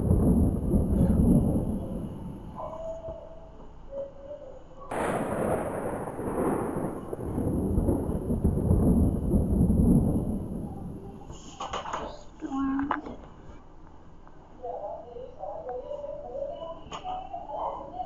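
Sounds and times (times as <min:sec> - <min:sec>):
rolling thunder: 0:00.0 - 0:03.0, 0:04.9 - 0:11.9.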